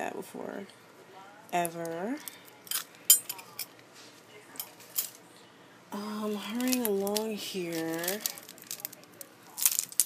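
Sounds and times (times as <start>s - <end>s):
metal rings clinking: 2.7s - 3.7s.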